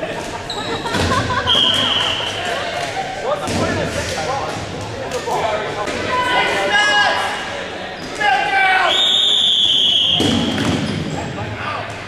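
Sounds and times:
whistle blast: 0:01.5 - 0:02.4, 0:08.9 - 0:10.5
balls thudding: 0:10.1 - 0:11.1.

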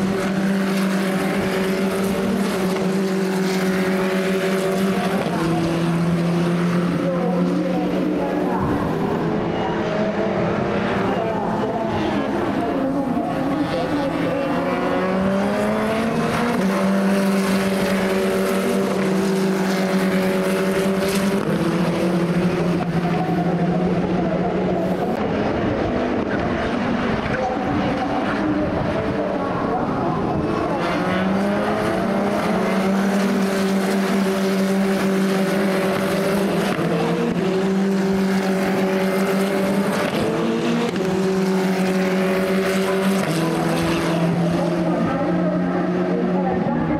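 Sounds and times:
racing car engines at high revs: 0:00.0 - 0:46.9.

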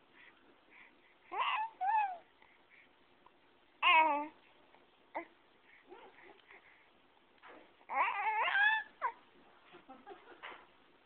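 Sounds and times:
baby babbling: 0:01.3 - 0:02.3, 0:03.8 - 0:04.4, 0:07.9 - 0:09.2
baby squealing: 0:07.9 - 0:09.2.

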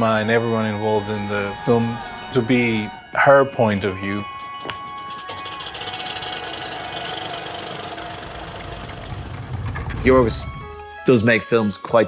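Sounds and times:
held high tone: 0:00.8 - 0:10.9
fast mechanical rattle: 0:04.2 - 0:10.7.

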